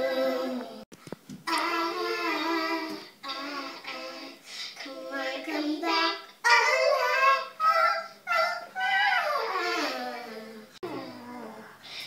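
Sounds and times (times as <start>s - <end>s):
girl singing in high voice: 1.5s - 11.8s.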